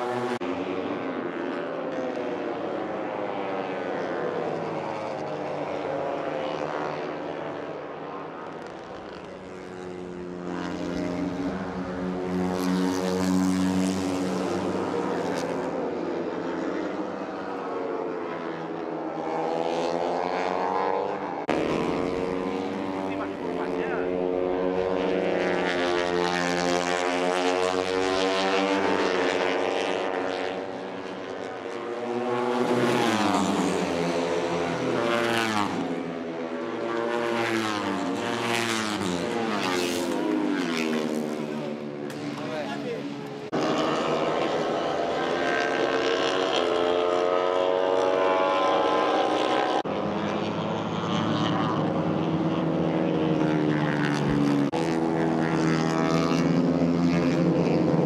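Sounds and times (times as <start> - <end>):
race bike engines at high revs: 1.2 - 58.0.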